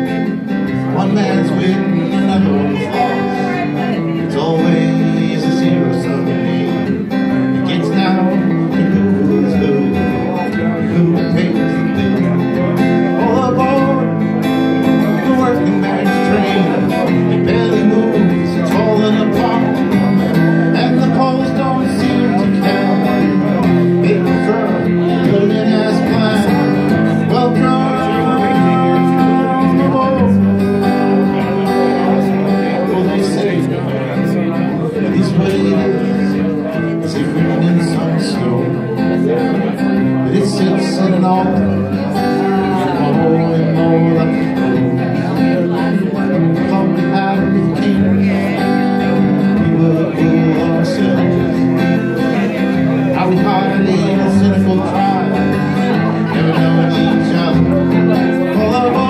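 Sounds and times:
acoustic guitar strumming: 0:00.0 - 0:59.0
person singing: 0:00.0 - 0:59.0.

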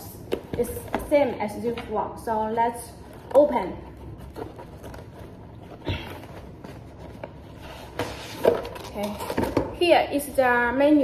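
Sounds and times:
cardboard rubbing and sliding: 0:04.2 - 0:08.8.

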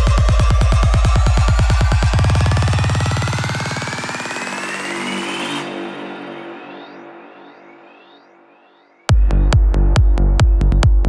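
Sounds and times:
stuttering synth with sweeps: 0:00.0 - 0:08.2
sustained synth pads: 0:00.0 - 0:10.9.

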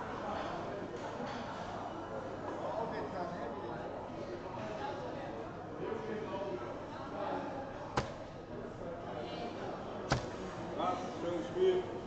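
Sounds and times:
dart striking plastic dartboard: 0:08.0 - 0:08.3, 0:10.1 - 0:10.4.

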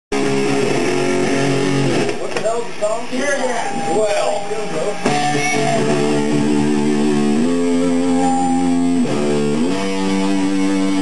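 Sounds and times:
electric guitar chord ringing: 0:00.1 - 0:02.1, 0:03.2 - 0:11.0.

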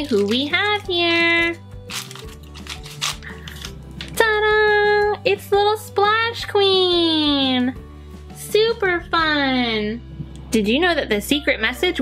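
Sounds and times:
foil wrapping rustling: 0:00.0 - 0:00.5, 0:01.9 - 0:03.8
soft background music: 0:00.0 - 0:12.0.

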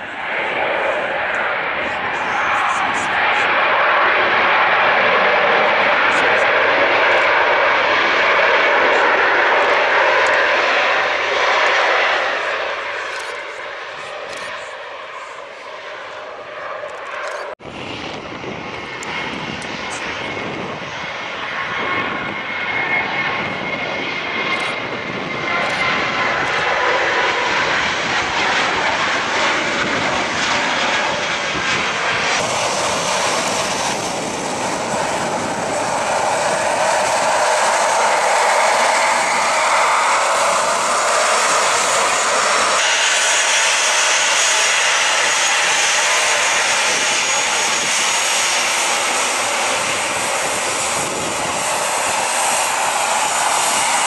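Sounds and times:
jet engines: 0:00.0 - 0:54.0.

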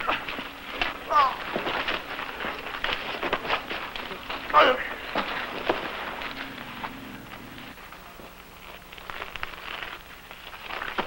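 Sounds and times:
rough background noise: 0:00.0 - 0:11.0
scuffling feet: 0:00.0 - 0:11.0.

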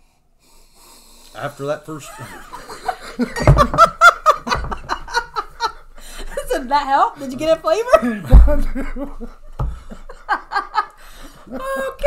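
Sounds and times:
people laughing: 0:02.0 - 0:12.0
low thumps: 0:03.3 - 0:05.4, 0:08.3 - 0:10.0.

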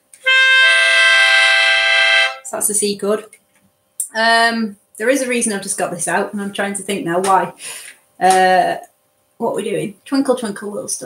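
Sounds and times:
melodica chord: 0:00.2 - 0:02.5.

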